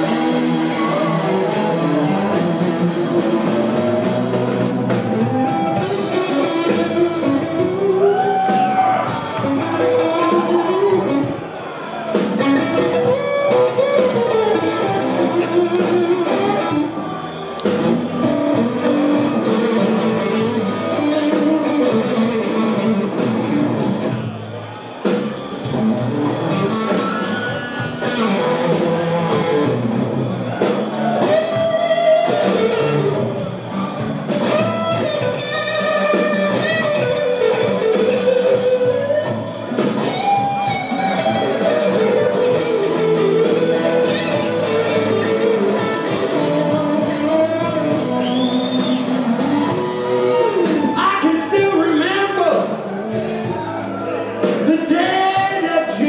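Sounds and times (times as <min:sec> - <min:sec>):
electric guitar lead lines: 0:00.0 - 0:11.4, 0:12.2 - 0:24.3, 0:25.2 - 0:56.0
blues band playing: 0:00.0 - 0:56.0.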